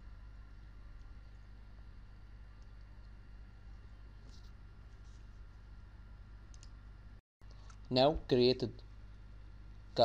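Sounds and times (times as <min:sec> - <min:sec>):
computer mouse clicks: 0:06.5 - 0:06.8.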